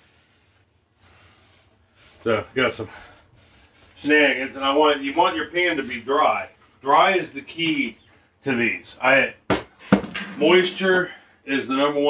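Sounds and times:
paper towel rubbing pot: 0:00.0 - 0:08.2.

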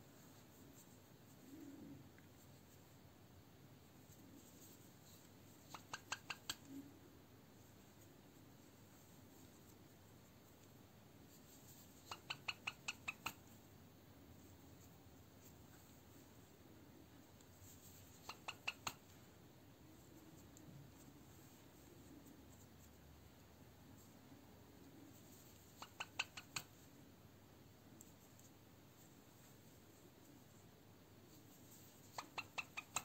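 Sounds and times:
bird chirping: 0:05.7 - 0:06.8, 0:12.0 - 0:13.4, 0:18.0 - 0:19.0, 0:25.7 - 0:26.7, 0:32.1 - 0:33.0.

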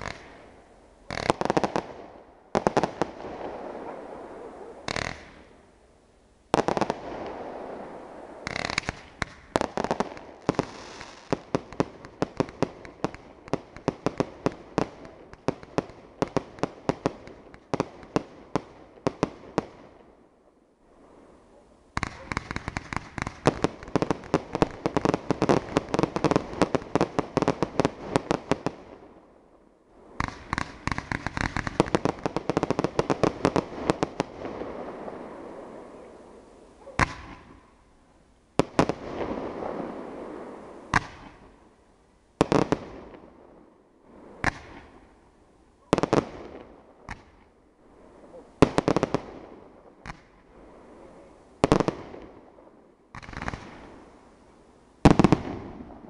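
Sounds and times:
fireworks bursting: 0:00.0 - 0:05.7, 0:06.5 - 0:19.9, 0:21.9 - 0:29.1, 0:30.0 - 0:37.8, 0:38.6 - 0:41.6, 0:42.4 - 0:43.2, 0:44.3 - 0:45.1, 0:45.8 - 0:52.4, 0:53.1 - 0:54.3, 0:55.0 - 0:56.0.

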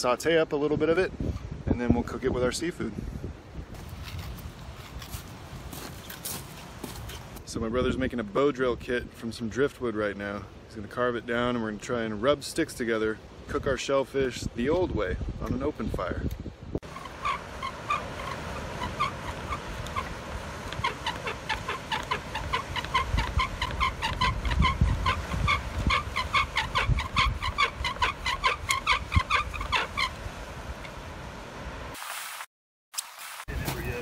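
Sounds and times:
bow drill spindle squeaking: 0:16.8 - 0:30.2.

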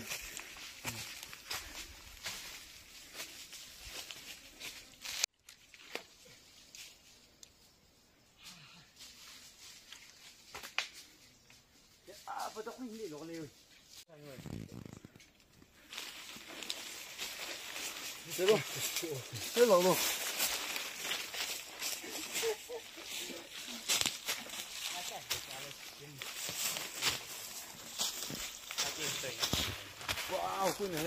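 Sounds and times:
footsteps on dry leaves and twigs: 0:00.0 - 0:07.4, 0:09.0 - 0:31.0.

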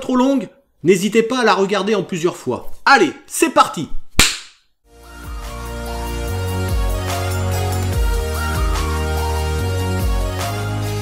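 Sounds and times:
whip-like snap: 0:04.2 - 0:04.6.

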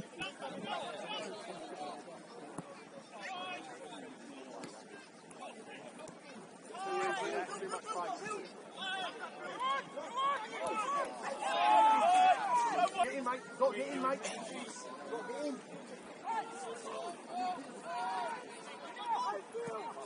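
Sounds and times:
footballers shouting: 0:06.6 - 0:20.0.

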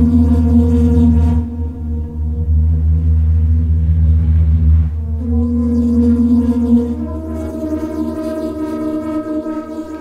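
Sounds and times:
deep steady drone: 0:00.0 - 0:10.0
sustained ringing tones: 0:00.0 - 0:10.0.

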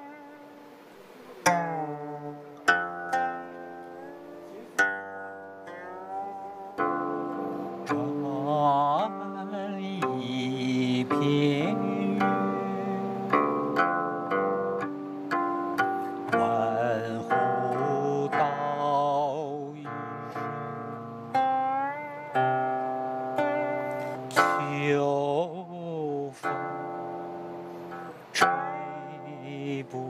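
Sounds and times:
plucked zither: 0:00.0 - 0:30.0.

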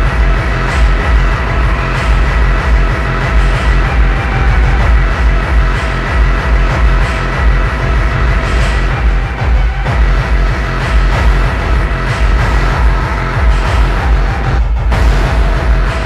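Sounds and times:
dark synth layers: 0:00.0 - 0:16.0
heavy kick drum pounding: 0:00.0 - 0:16.0.

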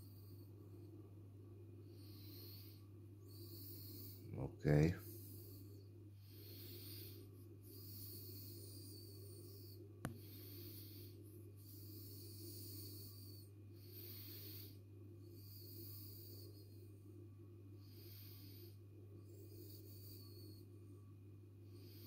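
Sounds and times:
faint low hum: 0:00.0 - 0:22.0.

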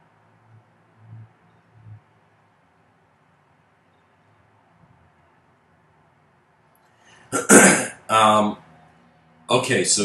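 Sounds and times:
man clearing his throat: 0:07.4 - 0:08.3.

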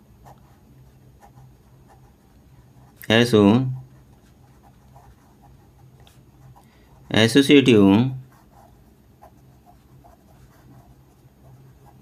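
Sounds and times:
pen scratching on paper: 0:00.2 - 0:03.0, 0:03.6 - 0:07.4, 0:08.2 - 0:12.0
man speaking: 0:03.0 - 0:03.8, 0:07.1 - 0:08.3.

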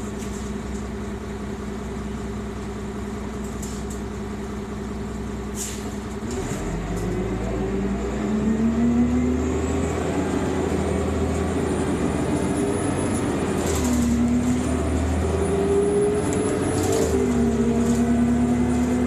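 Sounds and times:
bus engine accelerating: 0:00.0 - 0:19.0.

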